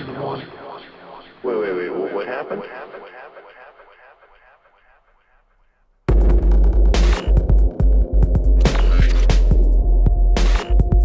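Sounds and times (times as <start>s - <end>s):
voice repeating through echo: 0.0s - 5.8s.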